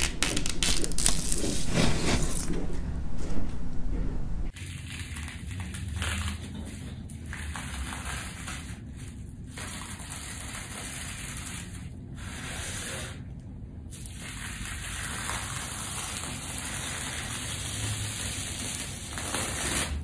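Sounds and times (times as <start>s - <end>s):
bubble wrap peeling crackle: 0.0s - 2.6s.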